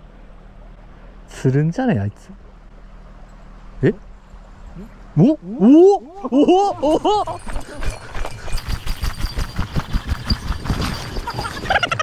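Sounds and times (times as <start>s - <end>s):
running footsteps through grass: 7.2s - 12.0s.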